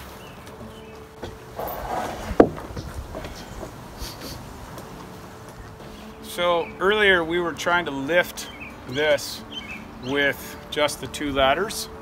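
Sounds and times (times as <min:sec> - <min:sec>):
timber scuffing and knocking: 0:00.4 - 0:06.0
sharp wooden knock: 0:02.0 - 0:02.9.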